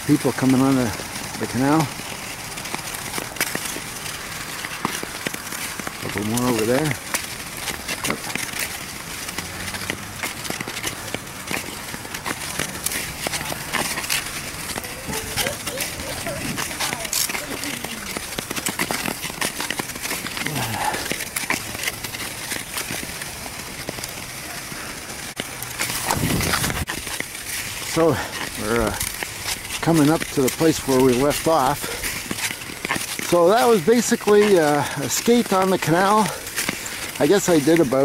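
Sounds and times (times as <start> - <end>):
skate blades scraping on ice: 0.0 - 38.0.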